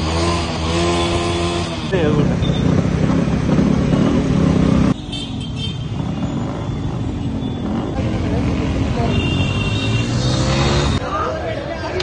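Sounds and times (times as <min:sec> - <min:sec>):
scooter and motorcycle engines: 0:00.0 - 0:12.0
voices: 0:07.8 - 0:12.0.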